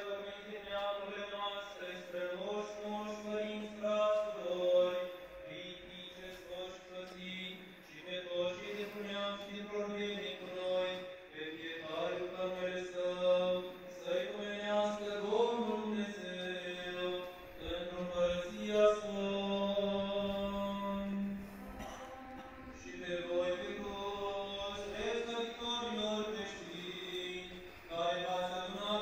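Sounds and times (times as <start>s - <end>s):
slow vocal chant: 0.0s - 29.0s
low drone: 15.0s - 29.0s.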